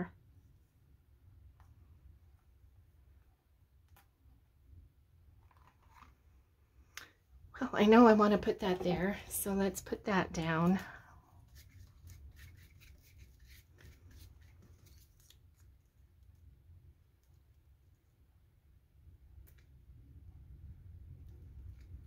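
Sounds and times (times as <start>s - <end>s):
low steady hum: 0.0s - 22.0s
paintbrush scratching on paper: 11.4s - 15.2s.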